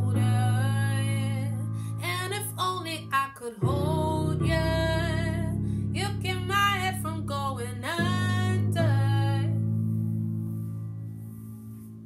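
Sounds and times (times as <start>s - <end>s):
woman singing: 0.0s - 9.8s.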